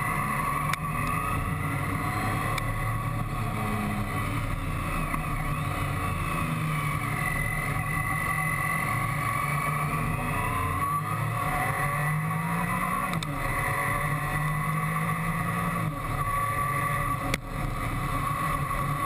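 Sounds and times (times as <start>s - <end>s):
motorcycle engine running: 0.0s - 19.0s.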